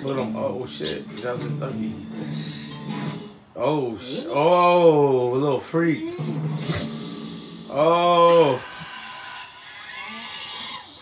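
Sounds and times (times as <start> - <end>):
cartoon voice cries from tv: 6.0 - 6.5.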